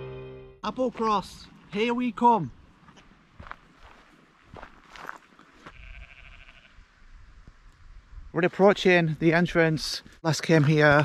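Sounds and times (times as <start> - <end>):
sheep bleating faintly: 5.6 - 6.8.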